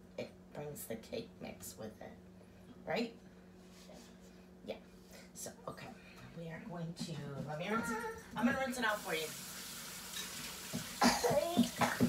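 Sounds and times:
water running from tap: 8.4s - 12.0s
child coughing: 11.0s - 12.0s.

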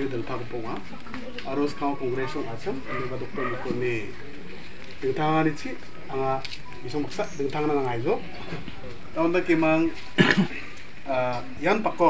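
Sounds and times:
man speaking: 0.0s - 0.8s, 1.5s - 4.2s, 5.0s - 8.3s, 9.2s - 12.0s.

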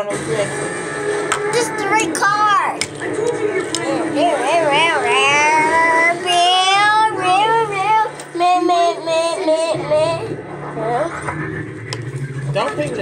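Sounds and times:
high child-like voices singing: 4.4s - 10.3s.

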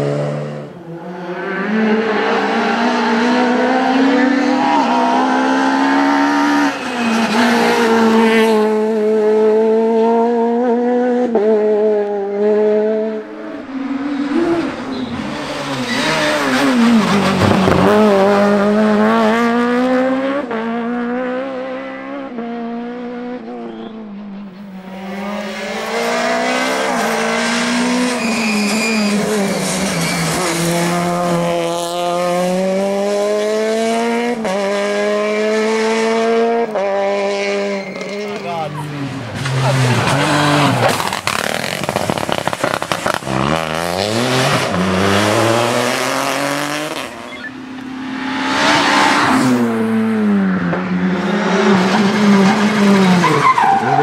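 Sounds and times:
rally car engines revving: 0.0s - 54.0s
car passing close by: 30.6s - 53.3s.

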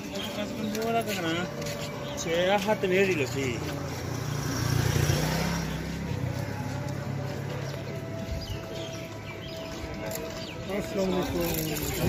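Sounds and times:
street crowd voices: 0.0s - 12.0s
small motorcycle passing: 4.0s - 6.5s.

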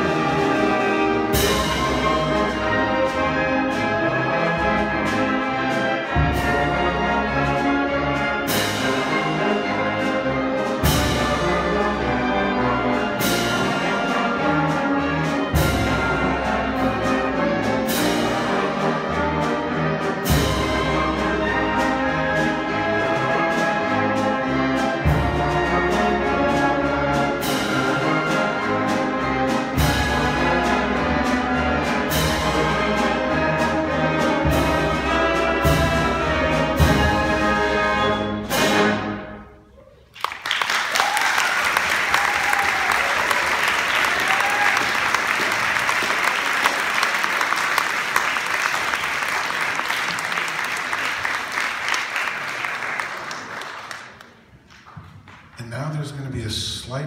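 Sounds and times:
wind ensemble playing: 0.0s - 39.8s, 40.7s - 54.0s
audience applauding: 39.9s - 55.6s.

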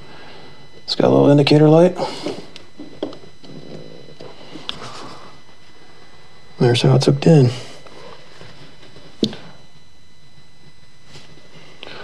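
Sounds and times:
steady low hiss: 0.0s - 12.0s
soft handling clicks and rustles: 7.8s - 9.6s.

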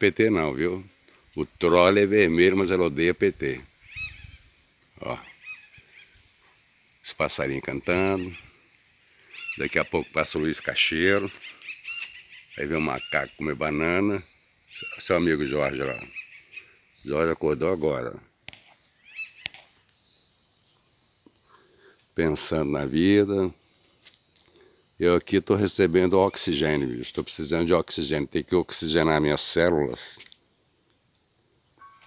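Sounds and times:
songbirds chirping: 0.0s - 32.0s
high-pitched outdoor background: 31.1s - 32.0s.

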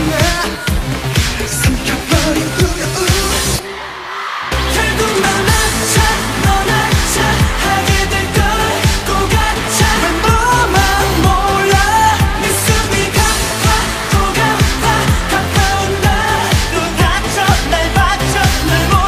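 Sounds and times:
man singing: 0.0s - 3.6s, 4.6s - 19.0s
dance-pop music with drums and synth: 0.0s - 19.0s.

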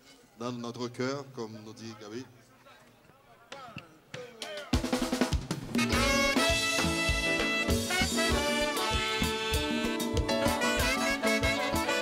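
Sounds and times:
sustained horn notes: 5.8s - 12.0s
sustained keyboard notes: 5.8s - 12.0s.

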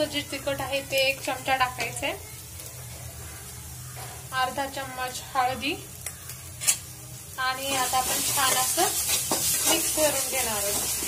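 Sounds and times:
paste sizzling in oil: 0.0s - 11.0s
spatula stirring: 7.6s - 11.0s.

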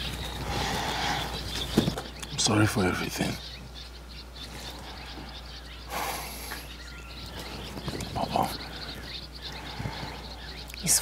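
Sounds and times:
bird chirps: 0.0s - 11.0s
steady low hum: 0.0s - 11.0s.

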